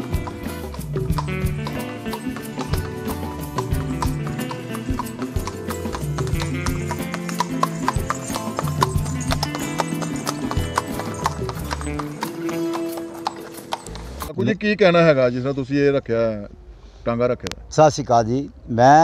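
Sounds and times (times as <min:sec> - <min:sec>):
horse hooves on pavement: 0:00.0 - 0:14.3
background music: 0:00.0 - 0:14.5.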